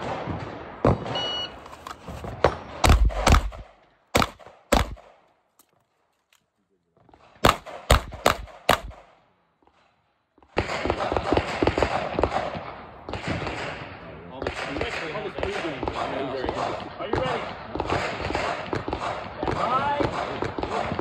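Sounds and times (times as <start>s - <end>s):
shot timer beep: 1.1s - 1.6s
pistol shots: 2.4s - 5.3s, 7.1s - 9.9s, 10.5s - 21.0s.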